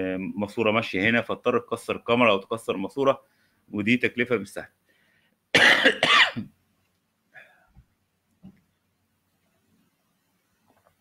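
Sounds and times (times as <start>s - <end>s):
person coughing: 5.6s - 6.5s.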